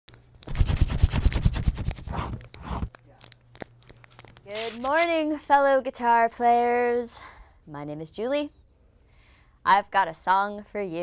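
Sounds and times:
paper swishes: 0:00.4 - 0:02.9
paper crumpling and tearing: 0:00.4 - 0:05.1.

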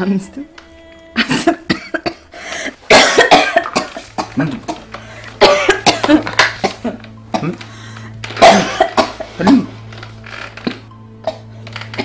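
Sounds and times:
woman coughing hard: 0:01.2 - 0:04.8, 0:05.4 - 0:07.6, 0:08.4 - 0:09.8.

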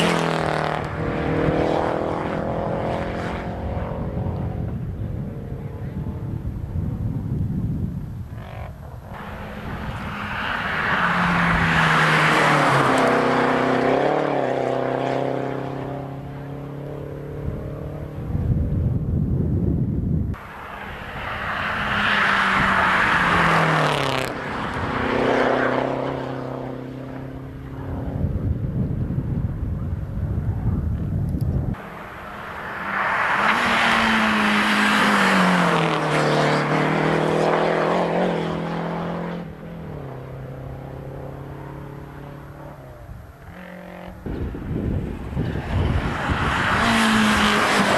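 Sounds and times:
rally cars racing past: 0:00.0 - 0:06.4, 0:08.3 - 0:18.8, 0:20.3 - 0:28.8, 0:31.7 - 0:47.9.

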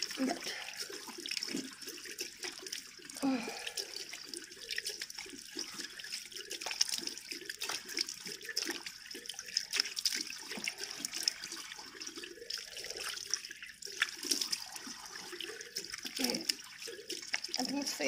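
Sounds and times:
water splashing into basin: 0:00.0 - 0:18.0.

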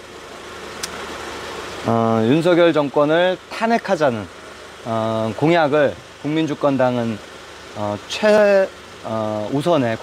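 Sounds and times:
faint click: 0:00.8 - 0:01.0.

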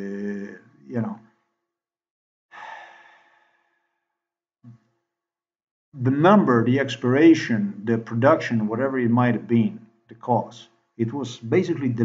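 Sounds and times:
man's breathy sigh: 0:02.5 - 0:03.6.

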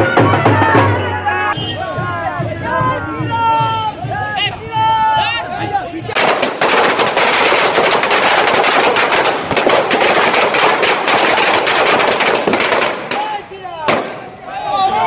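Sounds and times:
firecrackers banging: 0:06.1 - 0:14.4.

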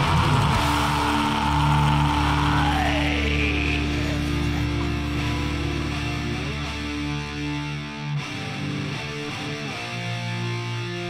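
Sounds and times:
death metal from a record: 0:00.0 - 0:11.0.

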